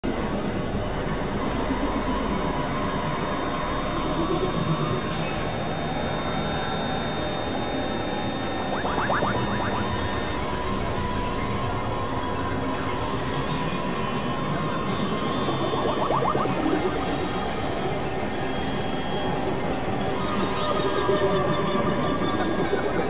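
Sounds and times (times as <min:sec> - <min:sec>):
grinding synthesizer drone: 0:07.8 - 0:20.3
high whistling tones: 0:08.7 - 0:09.9
short electronic chirps: 0:08.7 - 0:09.9.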